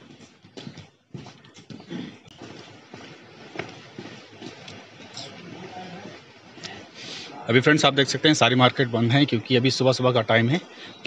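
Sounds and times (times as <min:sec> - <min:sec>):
footsteps on concrete: 0:00.0 - 0:07.2.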